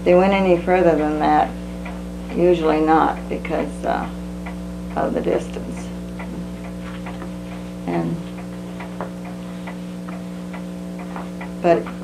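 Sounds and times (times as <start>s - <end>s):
low electrical hum: 0.0s - 12.0s
wall clock ticking: 0.0s - 12.0s.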